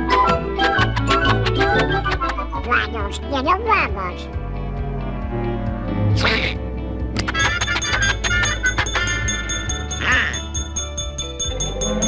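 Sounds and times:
cartoon orchestral music: 0.0 - 3.8, 5.2 - 12.0
light ticking beat: 7.0 - 12.0.

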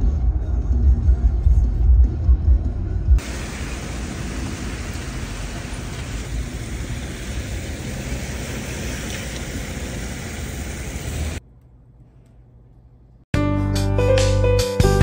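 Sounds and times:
outdoor hiss and rumble: 3.2 - 13.3.

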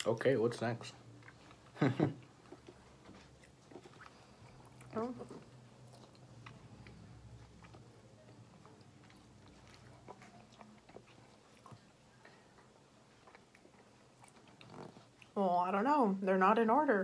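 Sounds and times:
faint chewing: 1.0 - 15.4.

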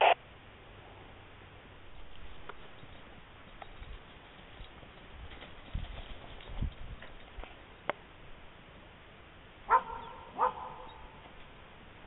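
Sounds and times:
dog barking: 9.7 - 11.2.

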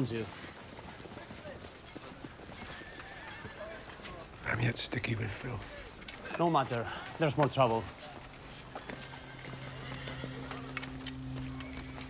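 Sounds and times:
horse hooves clopping on stone: 0.0 - 12.0
horse whinny: 2.4 - 3.9, 8.7 - 11.4.

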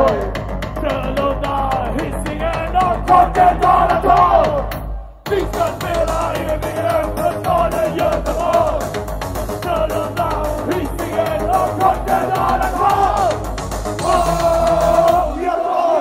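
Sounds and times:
performer and crowd shouting: 0.0 - 8.9, 9.6 - 16.0
bass drum beat: 0.0 - 15.5
loud electronic music: 0.0 - 16.0.

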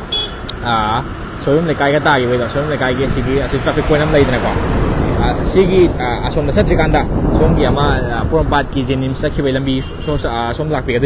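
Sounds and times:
road traffic noise: 0.0 - 11.0
man speaking: 0.5 - 4.6, 5.2 - 11.0.

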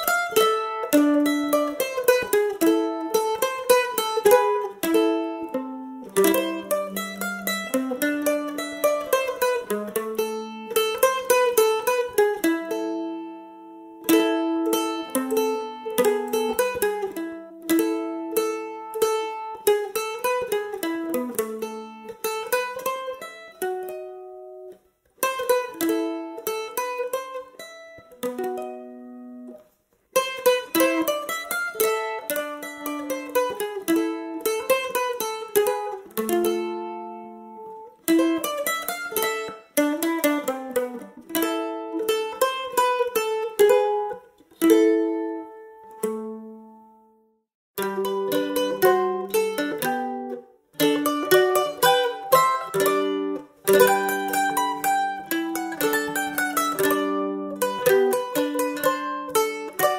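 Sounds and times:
mandolin folk melody: 0.0 - 59.9.

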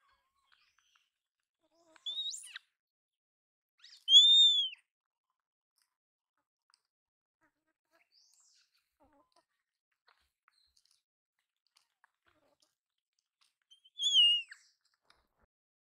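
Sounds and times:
high-pitched animal call: 4.1 - 4.7, 13.9 - 14.5
faint small clicks: 10.1 - 13.8.

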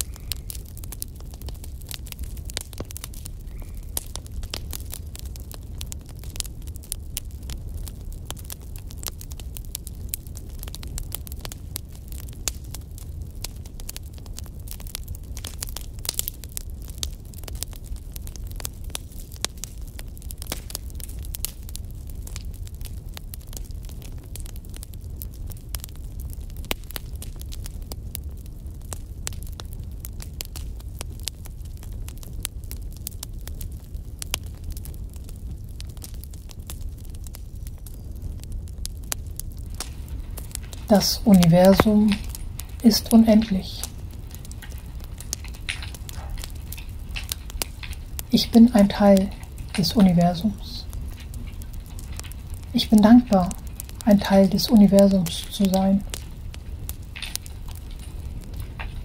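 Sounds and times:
low fire rumble: 0.0 - 59.0
wood fire crackling: 0.0 - 59.0.

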